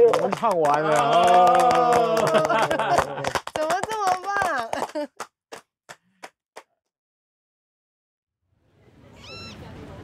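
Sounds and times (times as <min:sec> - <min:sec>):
single hand claps: 0:00.1 - 0:06.7.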